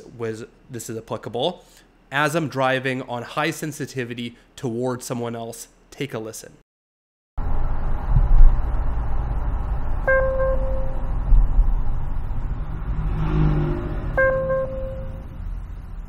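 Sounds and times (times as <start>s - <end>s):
road and engine noise in car: 7.4s - 16.0s
dash cam alert beeping: 10.0s - 11.1s, 14.2s - 15.3s.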